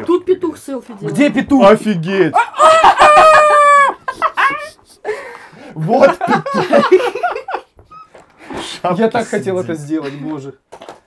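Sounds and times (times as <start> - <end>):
man imitating rooster crow: 2.3 - 4.0.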